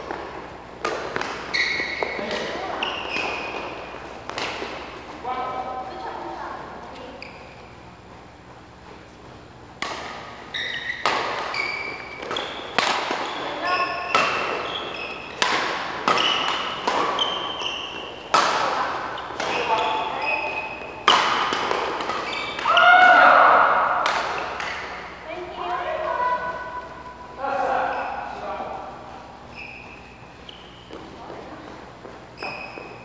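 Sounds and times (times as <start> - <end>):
rackets hitting shuttlecock: 0.0 - 5.2, 9.6 - 25.2
shoes squeaking on court: 0.0 - 22.9, 24.2 - 33.0.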